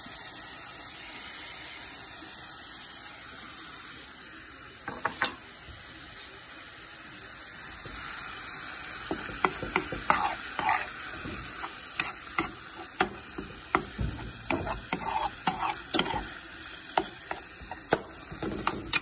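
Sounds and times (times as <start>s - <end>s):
meat sizzling in a frying pan: 0.0s - 19.0s
metal spoon scraping a frying pan: 9.1s - 19.0s.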